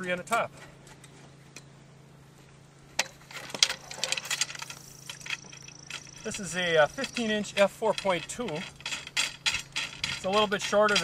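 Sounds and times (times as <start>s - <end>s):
metal poles clinking and rattling: 3.0s - 11.0s.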